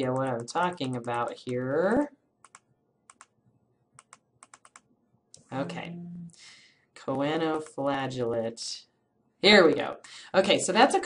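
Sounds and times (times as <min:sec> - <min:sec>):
faint computer keyboard keystrokes: 0:00.0 - 0:01.6, 0:02.4 - 0:03.4, 0:04.0 - 0:04.9.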